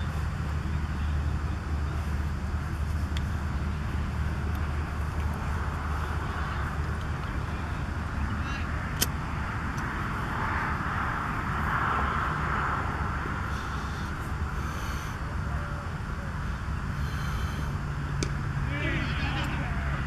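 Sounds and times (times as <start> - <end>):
faint distant voices: 0.0 - 20.0
low outdoor rumble: 0.0 - 20.0.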